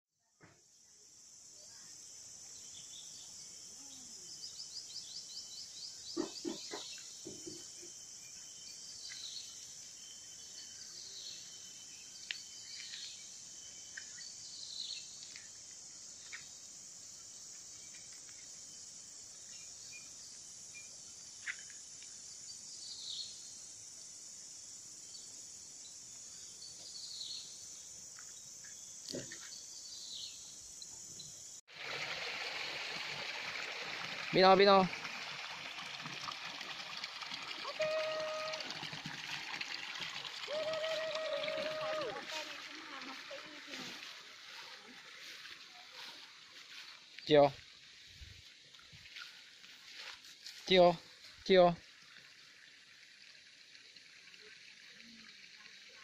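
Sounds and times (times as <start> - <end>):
insects chorus: 0.3 - 35.6, 36.2 - 51.8
water trickling from a pipe: 31.7 - 56.0.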